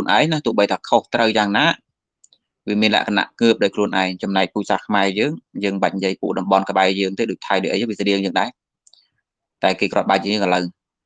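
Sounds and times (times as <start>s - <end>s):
man speaking: 0.0s - 1.8s, 2.7s - 8.5s, 9.6s - 10.8s
faint clicks: 2.2s - 2.5s, 8.8s - 9.1s.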